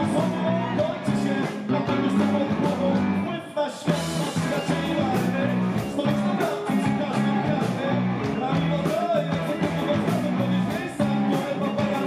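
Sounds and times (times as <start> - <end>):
rock band playing live: 0.0 - 12.0
singer's voice: 0.0 - 12.0.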